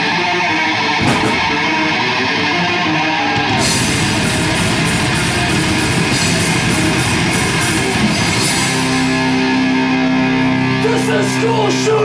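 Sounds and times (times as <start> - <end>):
bass guitar: 0.0 - 12.0
distorted electric guitar: 0.0 - 12.0
drum kit: 1.0 - 1.9, 3.5 - 9.6.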